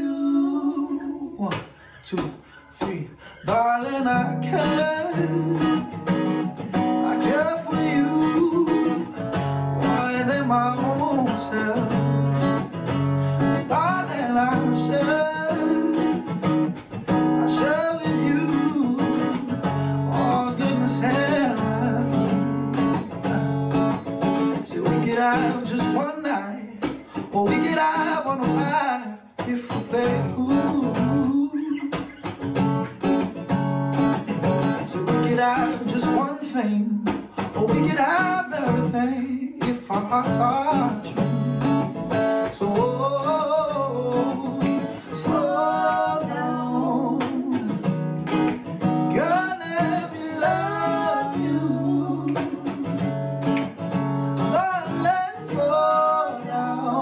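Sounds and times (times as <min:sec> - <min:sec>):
man singing: 0:00.0 - 0:32.3, 0:34.2 - 0:48.0, 0:49.0 - 0:57.0
strummed acoustic guitar: 0:00.0 - 0:57.0.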